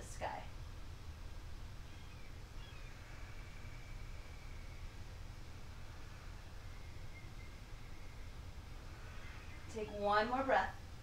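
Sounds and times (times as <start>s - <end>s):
steady low hum: 0.0s - 11.0s
faint high whistling tone: 1.9s - 10.5s.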